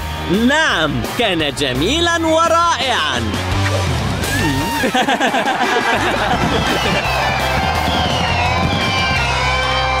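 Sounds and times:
cartoon music: 2.6 - 5.0
falling whistling tones: 6.7 - 9.4.

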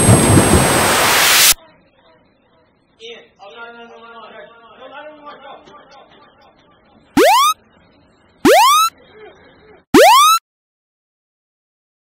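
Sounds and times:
electronic alarm whoop: 7.2 - 7.6, 8.5 - 8.9, 10.0 - 10.4.

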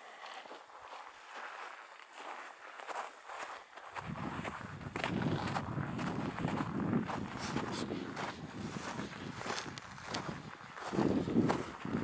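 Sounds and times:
footsteps crunching on frost: 0.0 - 12.0.

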